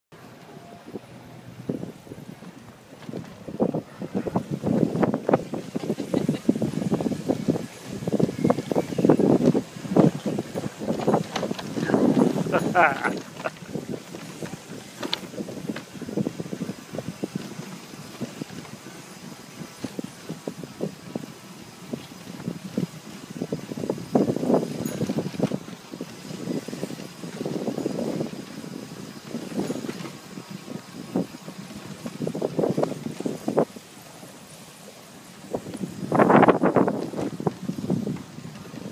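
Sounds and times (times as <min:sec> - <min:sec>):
bicycle taxi rattling: 0:00.3 - 0:38.9.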